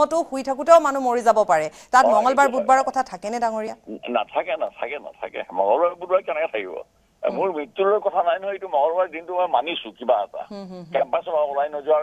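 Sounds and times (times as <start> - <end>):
man talking over telephone: 2.0 - 2.7, 3.9 - 12.0.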